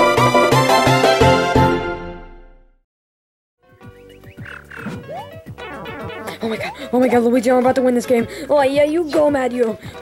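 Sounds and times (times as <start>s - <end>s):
electronic video game music: 3.9s - 7.3s
falling blips and swooping effects: 4.7s - 7.0s.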